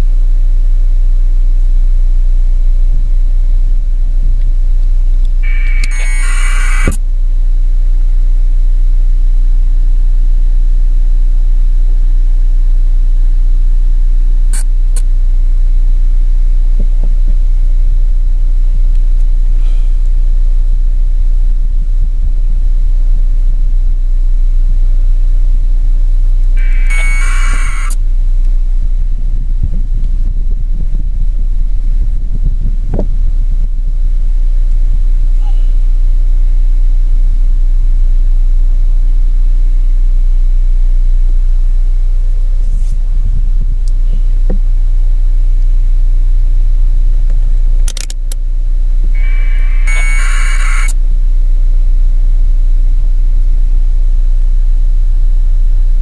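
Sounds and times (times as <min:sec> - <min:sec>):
electronic tones: 0:05.4 - 0:07.0, 0:26.6 - 0:28.0, 0:49.2 - 0:51.0
wind buffeting microphone: 0:28.9 - 0:33.7.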